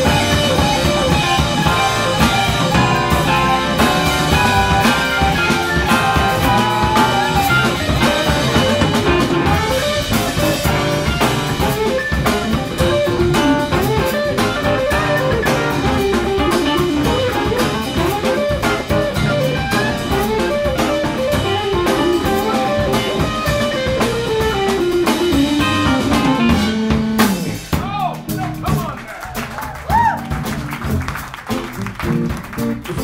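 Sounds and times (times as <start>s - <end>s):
saxophone: 0.0s - 27.6s
electric guitar: 0.0s - 27.8s, 29.7s - 33.0s
keyboard: 0.0s - 29.4s
bass: 0.0s - 33.0s
drum kit: 0.0s - 33.0s.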